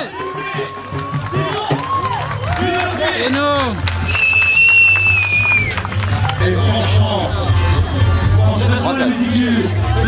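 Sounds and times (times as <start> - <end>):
spectators clapping and cheering: 0.0 - 7.9.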